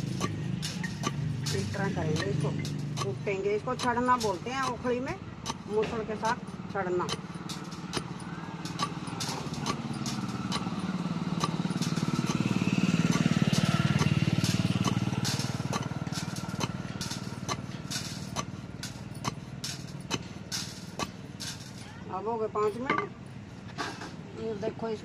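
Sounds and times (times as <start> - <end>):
pestle pounding in a mortar: 0.0 - 3.2, 7.1 - 17.7
passing vehicle engine: 0.0 - 25.0.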